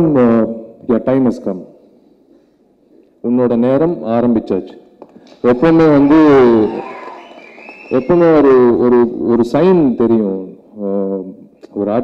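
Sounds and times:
man speaking into microphone: 0.0 - 1.8, 3.2 - 4.8, 5.4 - 7.0, 7.9 - 12.0
room noise: 4.8 - 10.2.

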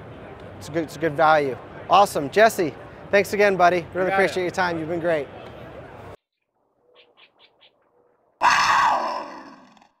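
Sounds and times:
loud cry with overtones: 8.4 - 9.8.

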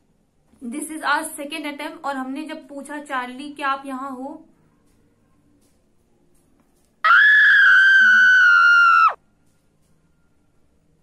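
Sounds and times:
loud high-pitched scream: 7.0 - 9.2.

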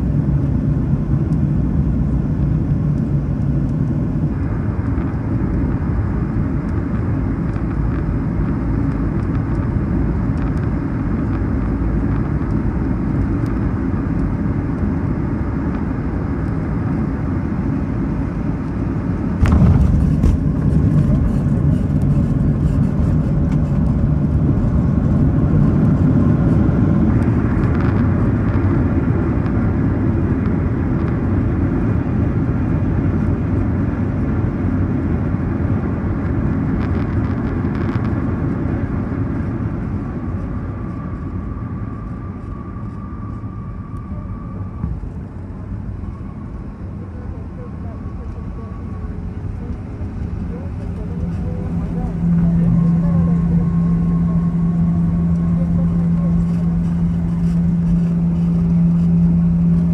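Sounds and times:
wheels rolling on taxiway: 0.0 - 59.9
jet engines idling: 0.2 - 30.8, 38.8 - 59.9.

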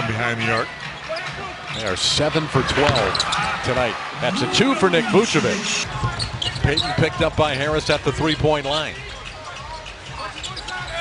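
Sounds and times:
arena crowd murmuring: 2.4 - 6.3.

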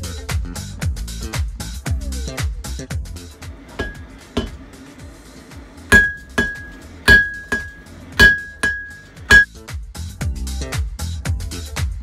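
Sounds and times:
hammer striking steel on anvil: 3.6 - 4.9, 5.9 - 9.6.

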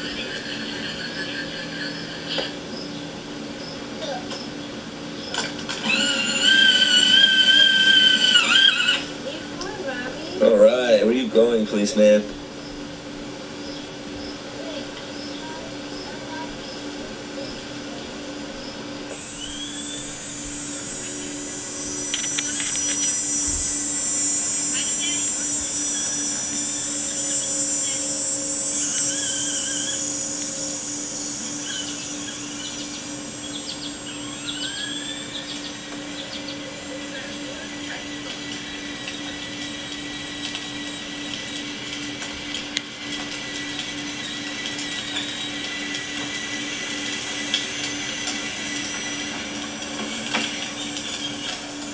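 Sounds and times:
constant low hum: 0.0 - 51.9
toy motorcycle motor whining: 5.3 - 12.2, 19.1 - 51.9
short rising tones: 18.8 - 36.9.

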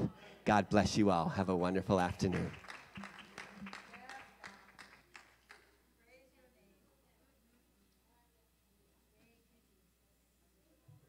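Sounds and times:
faint hand claps: 2.0 - 5.8.

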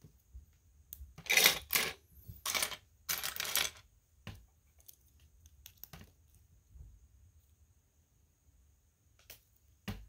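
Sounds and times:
plastic bricks clattering: 1.2 - 3.9.

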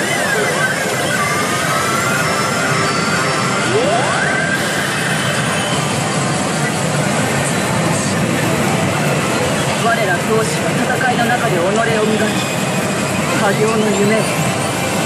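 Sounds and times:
pachinko machine sound effects: 0.0 - 6.9.

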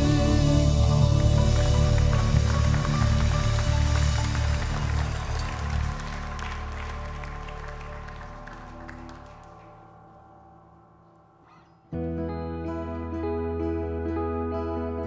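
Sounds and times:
people clapping: 0.0 - 10.3.

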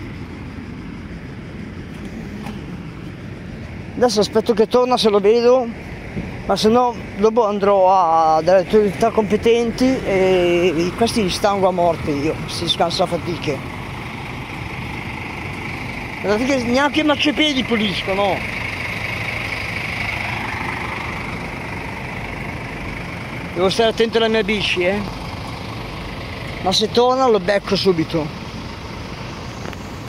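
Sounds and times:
faint engine hum: 0.0 - 30.0
road traffic rumble: 0.0 - 30.0.

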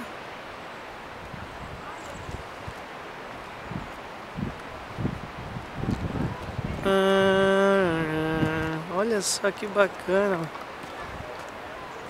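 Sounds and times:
wind noise on microphone: 0.0 - 8.9, 10.8 - 11.6.

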